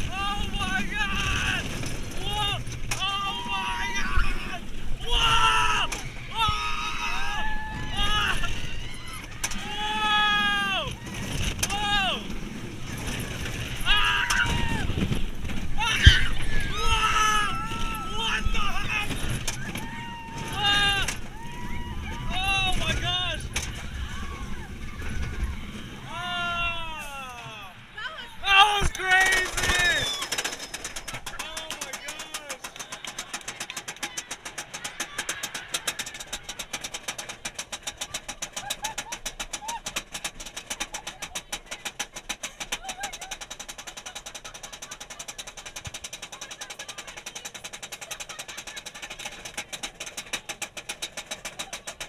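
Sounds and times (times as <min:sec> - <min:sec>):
riders screaming and whooping: 0:00.0 - 0:41.7
coaster train rumbling on track: 0:00.0 - 0:52.0
faint voices of riders: 0:31.1 - 0:36.8.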